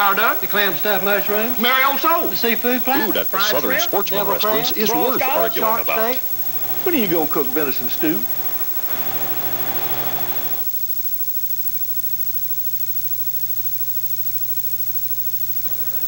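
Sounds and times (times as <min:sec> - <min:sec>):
low electrical hum: 0:00.0 - 0:10.7.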